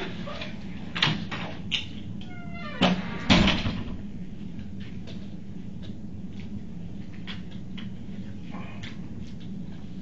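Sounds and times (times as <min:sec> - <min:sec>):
door hinge squeak: 0:02.3 - 0:03.6.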